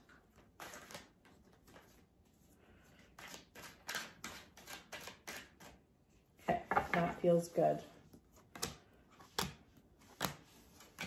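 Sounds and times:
cards being shuffled: 0:00.0 - 0:02.1, 0:08.1 - 0:11.0.

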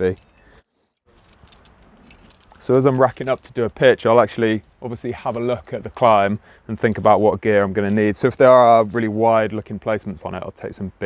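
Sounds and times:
metal climbing gear clinking: 0:00.0 - 0:03.7, 0:07.8 - 0:09.4.

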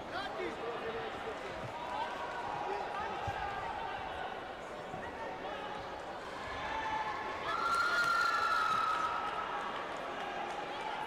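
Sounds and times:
busy sports hall noise: 0:00.0 - 0:11.0.

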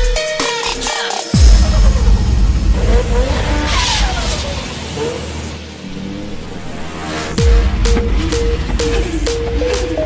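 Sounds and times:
bass-heavy electronic music: 0:00.0 - 0:10.0
motorcycle engine slowing: 0:01.4 - 0:10.0.

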